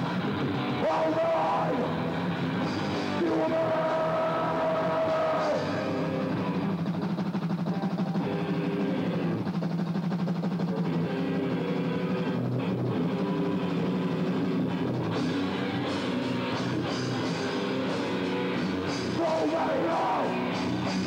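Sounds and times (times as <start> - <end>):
distorted electric guitar riffs: 0.0 - 21.0
drum kit: 0.0 - 21.0.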